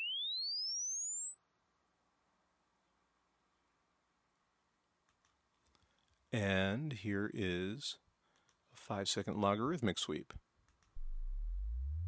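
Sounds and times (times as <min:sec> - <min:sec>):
rising sine tone sweep: 0:00.0 - 0:03.2, 0:11.0 - 0:12.0.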